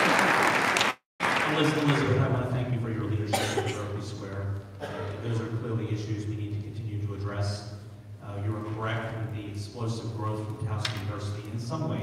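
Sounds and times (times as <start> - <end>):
steady low hum: 1.9 - 12.0
person coughing: 3.3 - 4.0, 4.8 - 5.2.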